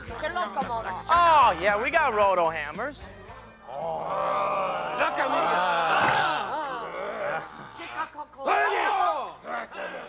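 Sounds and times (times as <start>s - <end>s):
men yelling and grunting: 3.7s - 7.7s, 8.4s - 10.0s.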